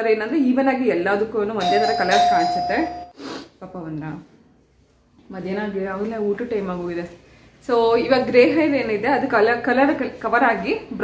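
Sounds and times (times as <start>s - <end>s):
electronic doorbell tone: 1.6s - 3.1s.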